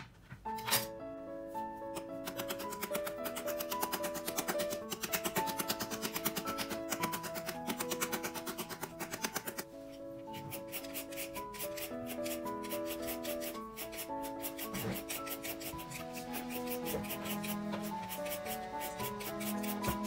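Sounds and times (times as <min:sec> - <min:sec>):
background music: 0:00.0 - 0:20.0
hand shredder scraping: 0:02.0 - 0:09.6, 0:10.3 - 0:20.0
knife scraping papaya: 0:10.3 - 0:20.0.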